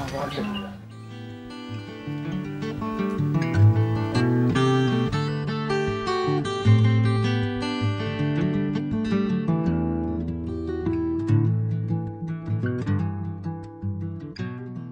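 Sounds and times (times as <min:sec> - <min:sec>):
acoustic guitar music: 0:00.0 - 0:14.9.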